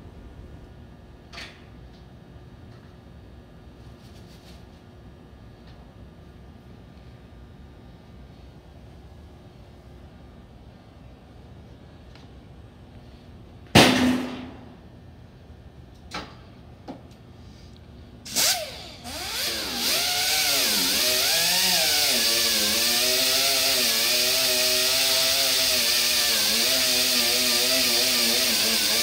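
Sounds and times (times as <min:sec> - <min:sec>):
low workshop hum: 0:00.0 - 0:29.0.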